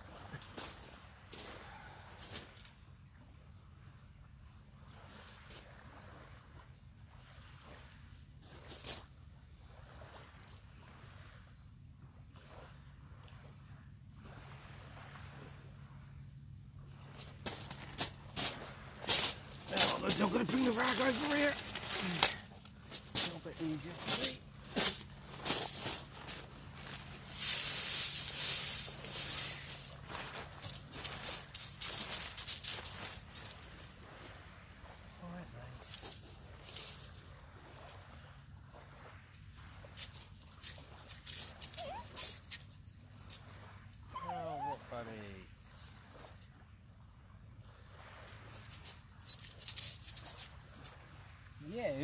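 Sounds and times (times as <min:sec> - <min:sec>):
low steady hum: 0:15.2 - 0:37.5
dog whining: 0:41.5 - 0:42.7, 0:44.1 - 0:45.8, 0:48.4 - 0:49.6
rustling and clicking: 0:48.8 - 0:50.9.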